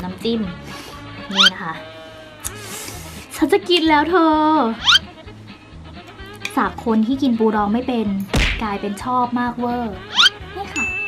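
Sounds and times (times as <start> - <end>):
background music: 0.0 - 11.0
woman singing drawn-out syllable: 1.3 - 1.8, 9.8 - 10.7.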